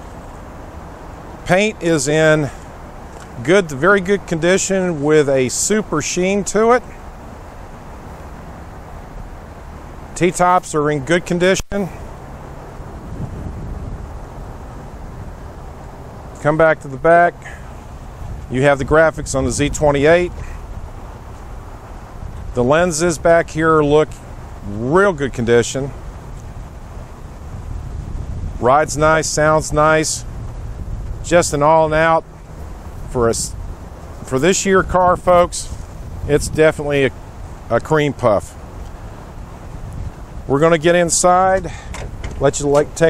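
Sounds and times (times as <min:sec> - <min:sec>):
faint hiss: 0:00.0 - 0:43.0
wind on microphone: 0:11.8 - 0:16.4, 0:17.3 - 0:43.0
car engine idling: 0:29.0 - 0:43.0.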